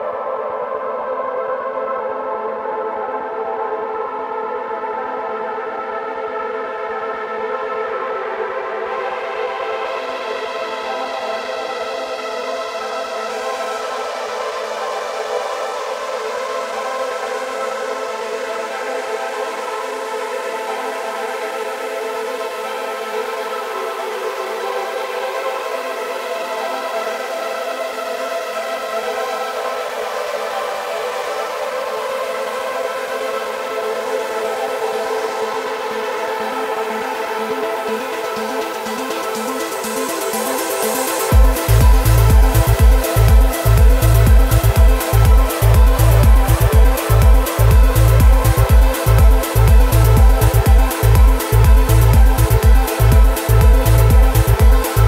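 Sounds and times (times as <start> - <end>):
droning synthesizer pad chord: 0.0 - 55.0
sustained synthesizer chord: 29.4 - 55.0.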